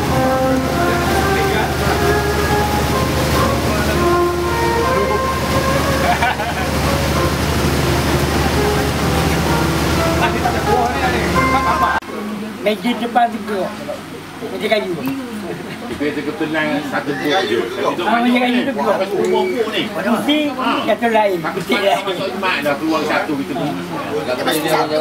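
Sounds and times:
boat engine running: 0.0s - 12.0s
music with held notes: 0.0s - 12.0s
water rushing past hull: 0.0s - 12.0s
people's voices: 0.0s - 25.0s.

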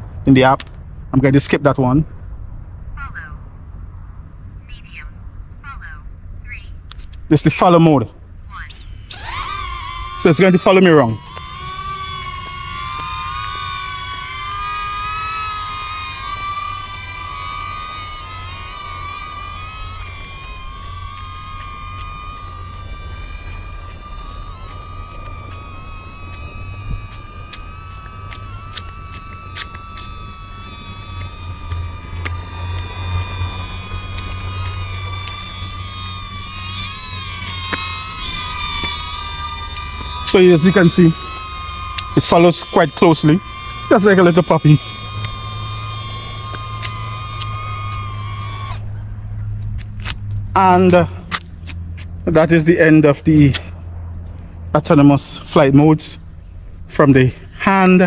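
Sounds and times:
drone propellers whining: 5.8s - 58.0s.

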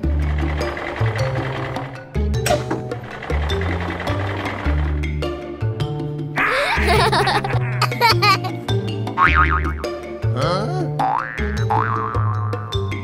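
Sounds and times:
bouncy children's music: 0.0s - 13.0s.

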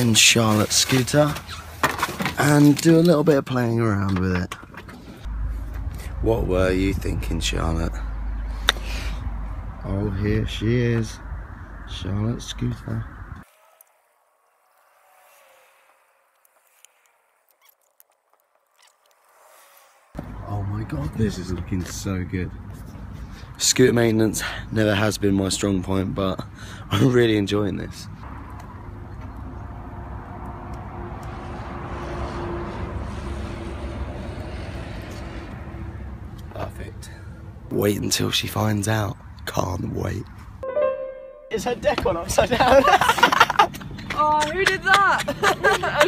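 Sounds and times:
scooter wheels rolling on tarmac: 0.0s - 6.1s, 13.4s - 23.4s, 41.8s - 46.0s
low outdoor rumble: 5.1s - 13.4s.

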